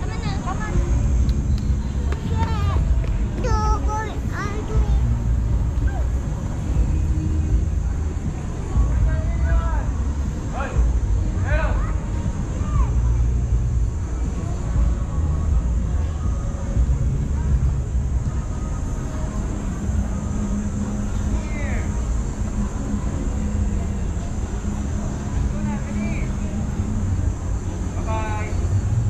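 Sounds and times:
low steady hum: 0.0 - 29.0
low traffic rumble: 0.0 - 29.0.

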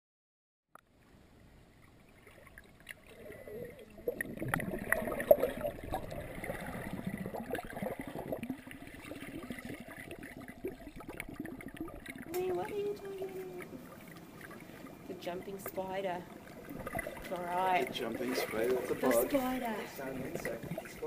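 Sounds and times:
underwater sloshing and bubbling: 0.8 - 21.0.

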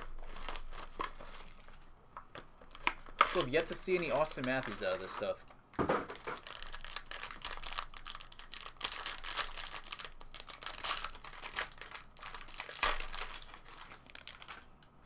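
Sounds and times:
wrapper crinkling and tearing: 0.0 - 5.4, 6.1 - 14.8.

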